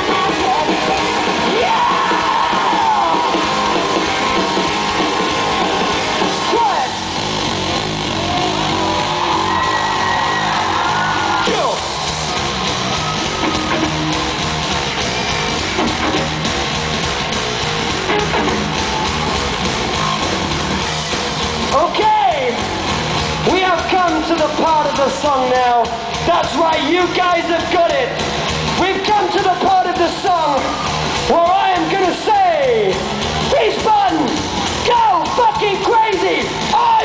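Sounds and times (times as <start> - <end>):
electric guitar: 0.0 - 21.8
bass guitar: 0.0 - 37.0
drums: 0.0 - 37.0.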